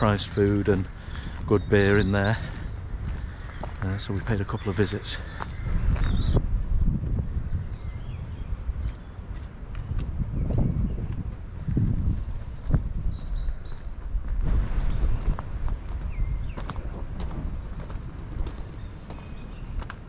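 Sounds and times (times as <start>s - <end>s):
footsteps crunching on gravel: 0.0s - 6.3s, 8.7s - 20.0s
wind rumble on microphone: 0.0s - 20.0s.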